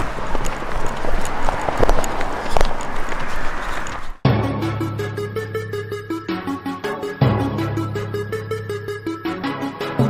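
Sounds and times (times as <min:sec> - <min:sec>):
handheld camera rumble: 0:00.0 - 0:04.2.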